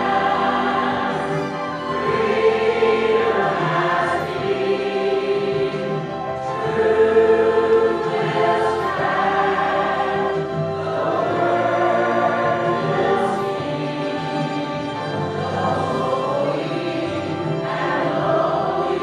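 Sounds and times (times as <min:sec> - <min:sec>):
mixed choir singing: 0:00.0 - 0:19.0.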